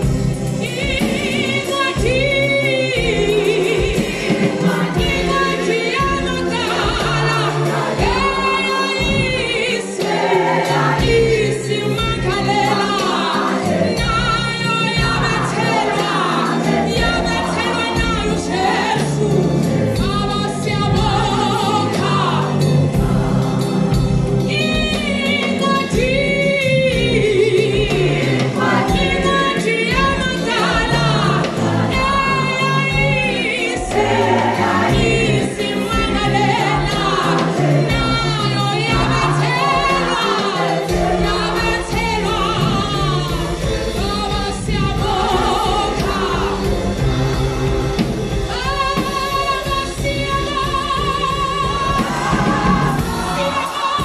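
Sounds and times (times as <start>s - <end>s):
choir singing a hymn in harmony: 0.0s - 54.0s.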